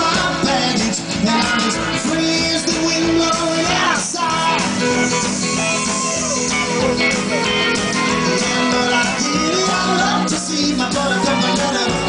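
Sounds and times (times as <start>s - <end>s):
drums: 0.0s - 12.0s
upright bass: 0.0s - 12.0s
electric guitar bending notes: 0.3s - 12.0s.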